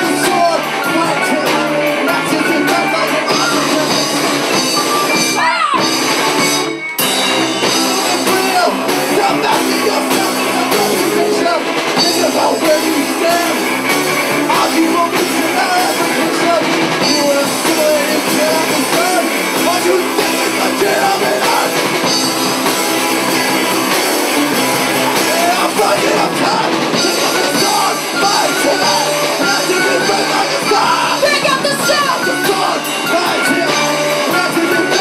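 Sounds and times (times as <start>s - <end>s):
man singing into a microphone: 0.0s - 4.4s, 7.7s - 21.9s, 25.2s - 35.0s
drum kit: 0.0s - 35.0s
electric guitars: 0.0s - 35.0s.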